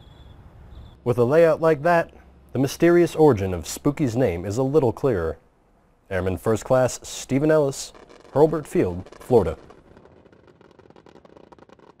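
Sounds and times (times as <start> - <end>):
faint dense crackling: 6.1 - 12.0.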